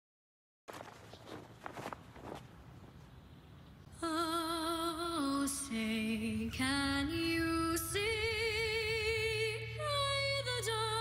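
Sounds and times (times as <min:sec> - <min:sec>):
soft scuffing: 0:00.7 - 0:03.0
faint outdoor background noise: 0:00.7 - 0:11.0.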